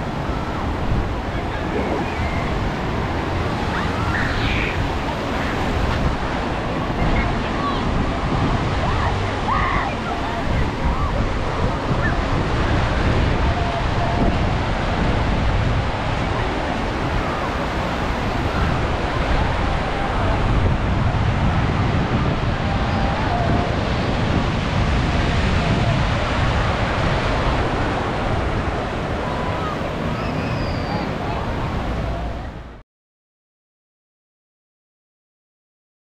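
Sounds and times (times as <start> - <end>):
small waves washing up beach: 0.0 - 32.6.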